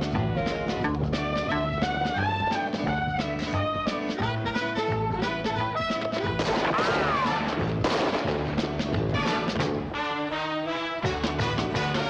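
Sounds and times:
brassy orchestral music: 0:00.0 - 0:12.0
gunshot: 0:06.4 - 0:09.8.

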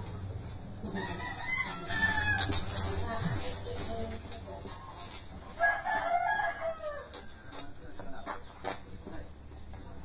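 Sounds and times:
rooster crowing: 0:00.9 - 0:02.7, 0:05.5 - 0:07.8.

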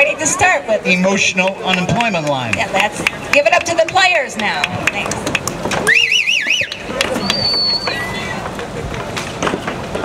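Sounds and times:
audience clapping: 0:01.4 - 0:07.8
audience whistling: 0:05.8 - 0:08.2.

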